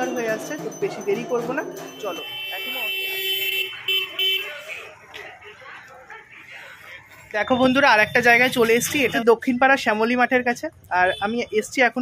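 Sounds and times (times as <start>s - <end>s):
street noise: 0.0s - 12.0s
vehicle horn: 2.2s - 4.8s
faint indistinct voices: 4.0s - 7.4s.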